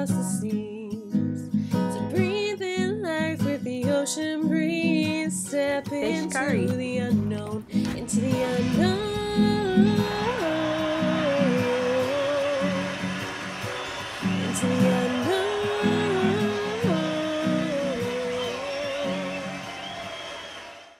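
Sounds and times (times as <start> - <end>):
instrumental backing: 3.4 - 20.2.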